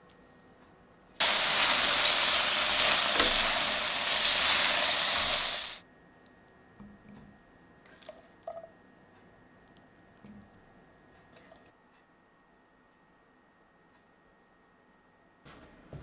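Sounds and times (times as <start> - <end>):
food sizzling in a hot pan: 1.2 - 5.8.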